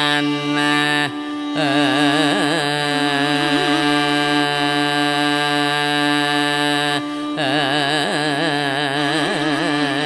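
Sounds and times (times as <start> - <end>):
man singing a long steady note: 0.0 - 10.0.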